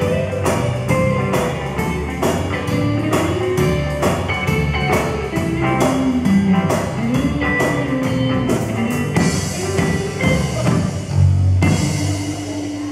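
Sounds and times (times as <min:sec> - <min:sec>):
rock band playing: 0:00.0 - 0:12.9.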